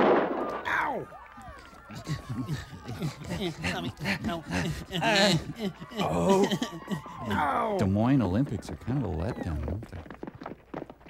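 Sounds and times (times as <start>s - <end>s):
loud bang: 0.0s - 0.8s.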